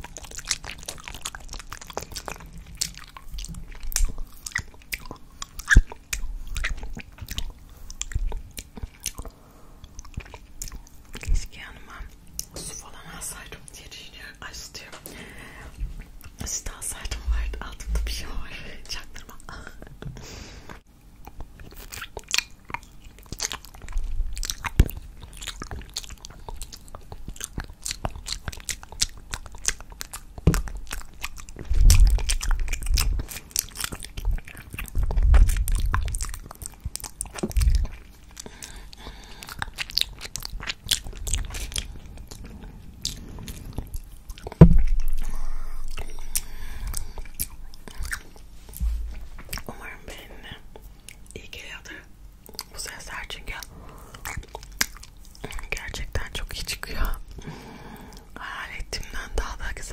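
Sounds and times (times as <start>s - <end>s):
wet licking and sucking: 0.0s - 9.3s, 21.3s - 50.0s, 52.4s - 56.3s
low thumps on microphone: 44.6s - 45.2s, 48.8s - 49.4s.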